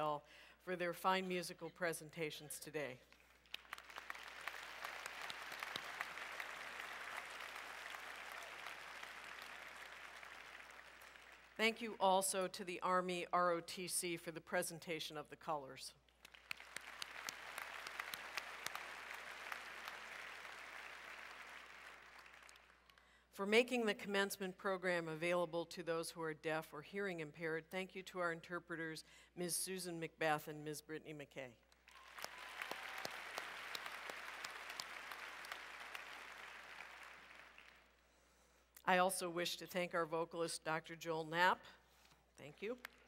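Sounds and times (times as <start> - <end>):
audience applauding: 3.4 - 11.6, 16.2 - 22.9, 31.9 - 37.9.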